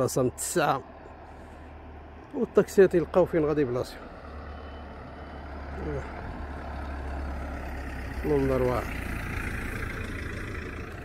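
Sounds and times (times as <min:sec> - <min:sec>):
car passing by: 0:03.0 - 0:11.0.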